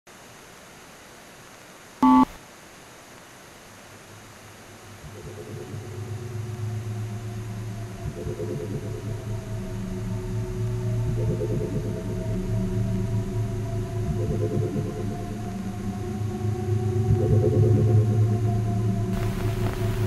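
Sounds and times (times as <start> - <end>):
faint steady hiss: 0.1 - 16.8, 18.2 - 20.0
short loud beep: 2.0 - 2.3
low drone of held tones: 5.0 - 20.0.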